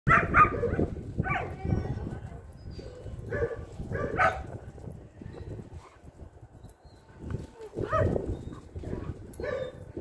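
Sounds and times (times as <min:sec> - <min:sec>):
dog barking: 0:00.1 - 0:01.6, 0:03.3 - 0:04.5, 0:07.8 - 0:08.2, 0:08.9 - 0:09.9.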